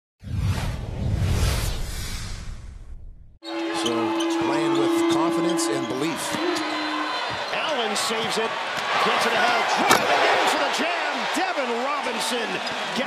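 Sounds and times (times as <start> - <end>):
voices and crowd noise: 3.4 - 13.0.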